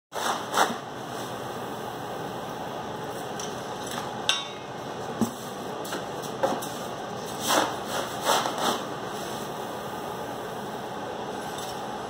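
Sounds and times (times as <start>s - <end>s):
scoops raking through cat litter: 0.1s - 1.4s, 5.2s - 9.5s.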